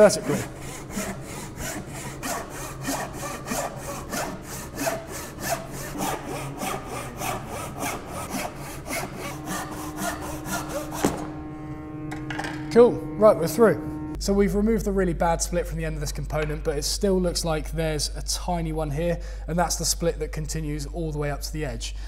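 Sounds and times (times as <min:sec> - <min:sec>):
hand saw sawing wood: 0:00.0 - 0:11.3.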